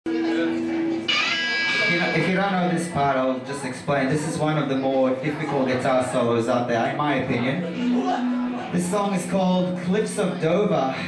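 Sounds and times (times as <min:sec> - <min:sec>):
electric guitar ringing: 0:00.9 - 0:02.7.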